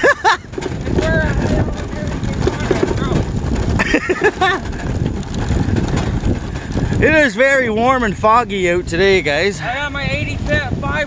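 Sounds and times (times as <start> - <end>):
laughter: 0.0 - 0.6, 3.8 - 4.8
tyres rolling over bumpy grass: 0.0 - 9.2
wind buffeting the microphone: 0.0 - 11.0.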